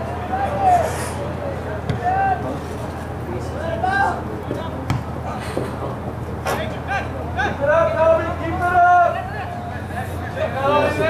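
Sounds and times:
people shouting: 2.0s - 2.4s, 10.4s - 11.0s
ball being kicked thump: 4.9s - 5.1s.

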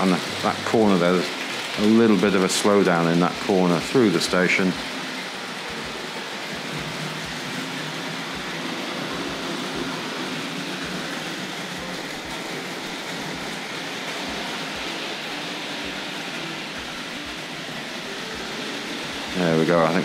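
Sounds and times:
model trains whirring on track: 0.0s - 20.0s.

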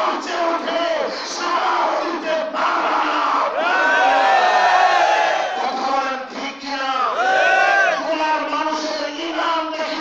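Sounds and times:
man shouting through loudspeaker: 0.0s - 4.0s, 5.3s - 10.0s
crowd of men calling out: 7.1s - 8.0s.

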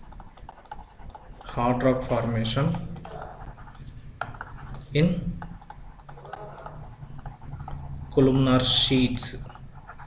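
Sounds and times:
stylus tapping on tablet: 0.0s - 7.9s
low steady hum: 0.0s - 10.0s
man speaking: 1.5s - 3.4s, 4.8s - 5.5s, 8.0s - 9.6s.

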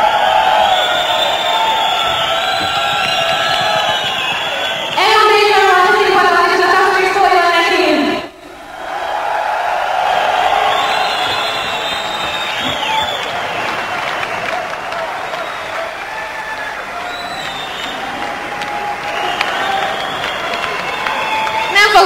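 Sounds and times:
audience applauding and cheering: 0.0s - 22.0s.

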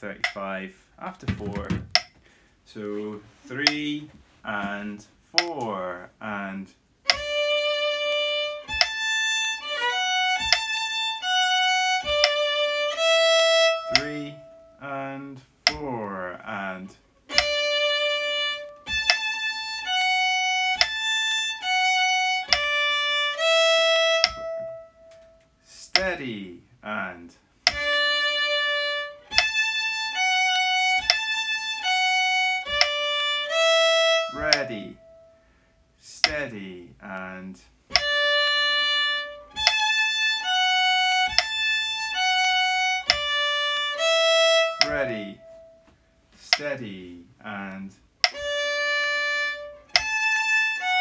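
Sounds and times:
fiddle playing slow held notes: 7.0s - 15.3s, 17.3s - 26.1s, 27.7s - 35.4s, 37.9s - 45.8s, 48.2s - 51.0s.

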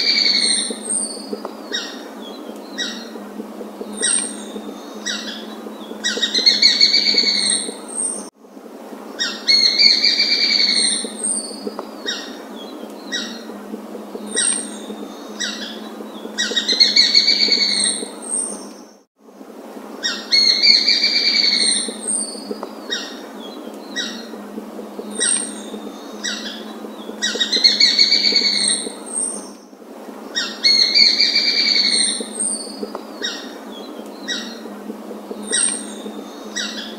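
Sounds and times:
bird calling with pulsing trills: 0.0s - 8.3s, 9.2s - 18.8s, 20.1s - 29.6s, 30.4s - 36.9s
steady background hiss: 0.0s - 36.9s.

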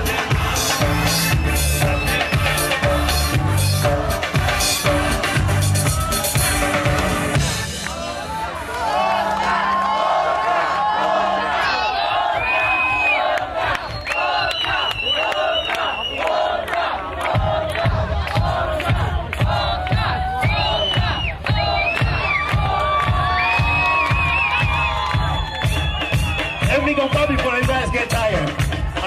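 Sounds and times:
steady drum beat: 0.0s - 8.1s, 17.2s - 29.0s
audience cheering and shouting: 0.0s - 29.0s.

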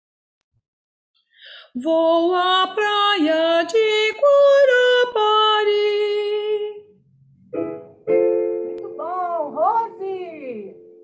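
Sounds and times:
woman singing: 1.7s - 6.9s.

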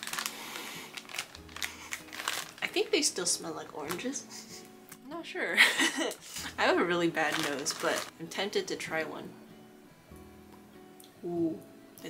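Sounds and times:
plastic bag crinkling: 0.0s - 3.2s, 6.4s - 8.2s.

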